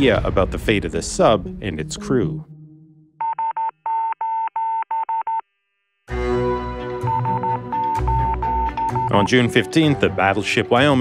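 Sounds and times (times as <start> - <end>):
morse code radio beeps: 3.2 - 5.4, 7.0 - 9.4.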